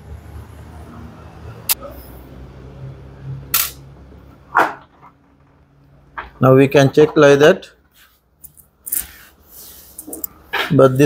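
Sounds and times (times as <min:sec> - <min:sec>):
sharp click: 0:03.5 - 0:03.8.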